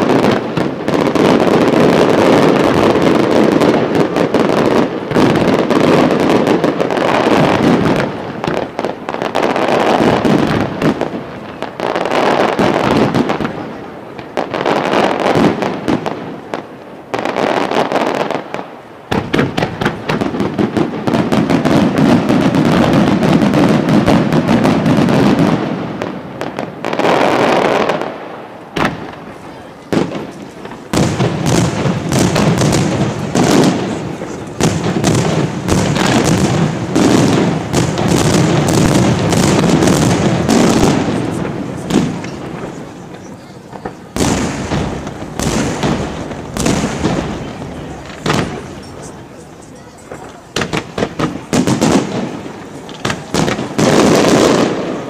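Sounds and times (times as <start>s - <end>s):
fireworks bangs and crackling: 0.0s - 55.0s.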